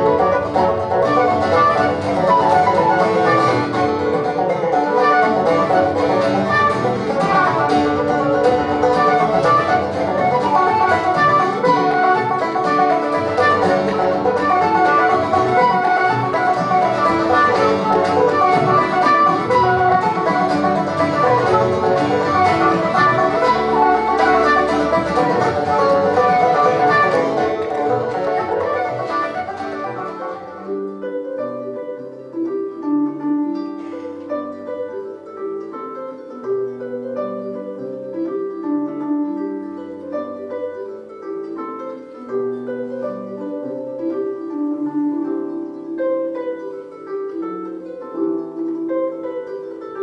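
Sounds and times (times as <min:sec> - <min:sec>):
fast folk dance tune: 0:00.0 - 0:31.7
bowed fiddle: 0:00.0 - 0:50.0
plucked banjo: 0:00.0 - 0:50.0.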